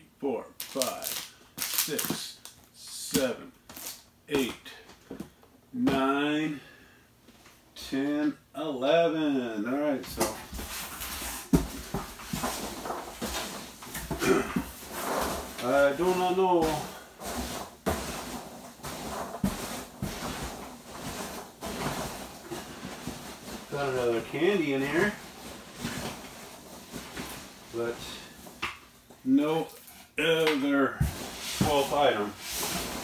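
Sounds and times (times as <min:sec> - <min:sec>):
packaging rustling: 0:00.6 - 0:02.7
rummaging in cardboard box: 0:10.5 - 0:28.5, 0:31.0 - 0:33.0.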